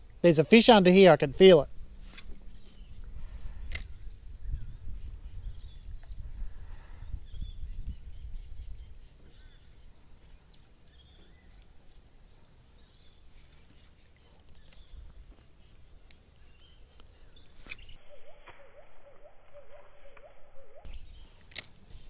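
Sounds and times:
sharp click: 3.7 - 3.9
faint bird chirps: 3.9 - 21.4.

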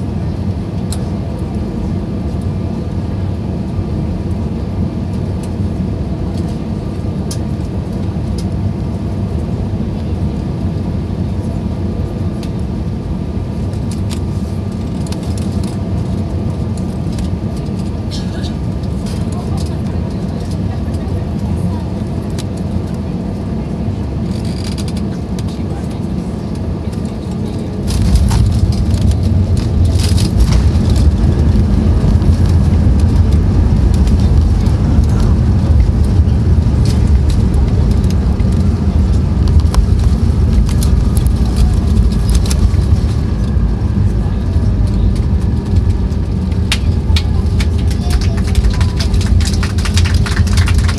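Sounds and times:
airplane cabin airflow and engines: 0.0 - 50.9
reverse thrust roar: 27.7 - 50.9.

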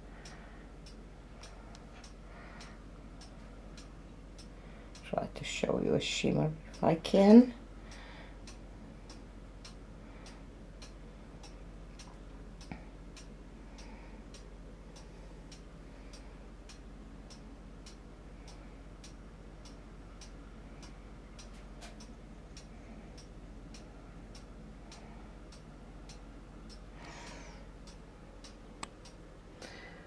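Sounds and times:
faint steady ticking: 0.0 - 30.0
low hum: 0.0 - 30.0.

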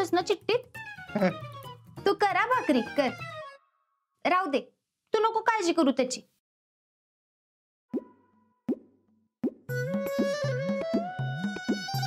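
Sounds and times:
music with bouncing bass: 9.5 - 12.0.

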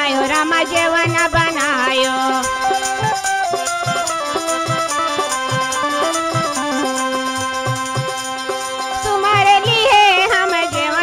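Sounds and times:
woman singing with vibrato: 0.0 - 3.6, 6.6 - 11.0
harmonium chords: 0.0 - 11.0.

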